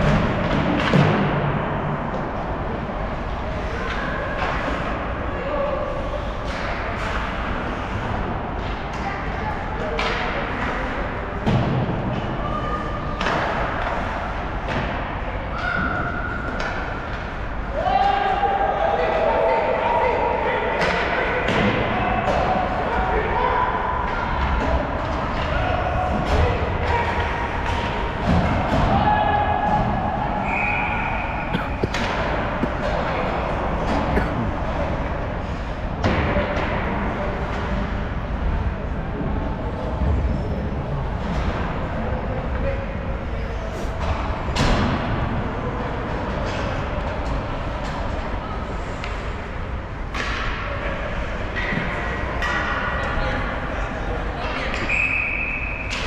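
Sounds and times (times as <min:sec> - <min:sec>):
hockey sticks and puck knocking: 0:31.6 - 0:33.2.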